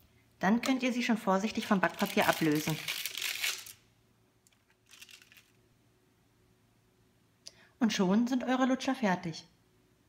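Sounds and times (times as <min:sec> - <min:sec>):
baking paper rustle: 0:01.4 - 0:03.8, 0:04.6 - 0:05.6.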